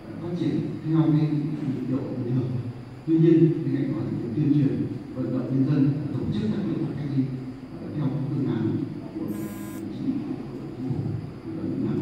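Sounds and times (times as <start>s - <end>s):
short electronic buzz: 9.3s - 9.8s.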